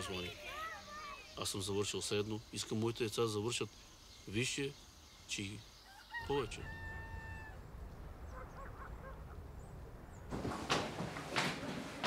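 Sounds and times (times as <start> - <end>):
rooster crowing: 5.8 - 7.8
distant animal calls: 5.8 - 10.3.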